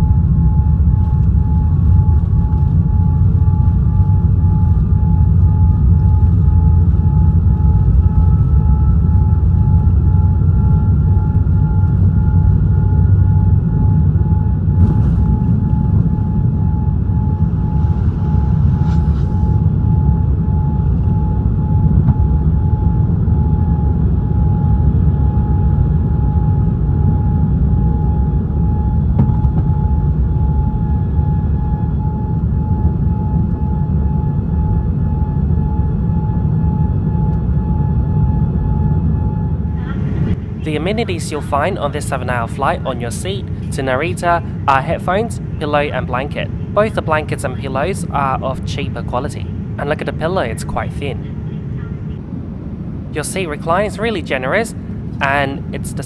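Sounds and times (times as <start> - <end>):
jet engine rumble and whine: 0.0 - 56.0
second fainter whine: 14.7 - 21.8.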